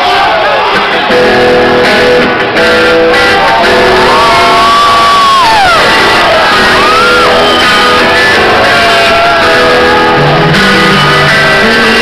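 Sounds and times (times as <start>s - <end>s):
rock band playing live: 0.0s - 12.0s
long high shout: 3.2s - 11.4s.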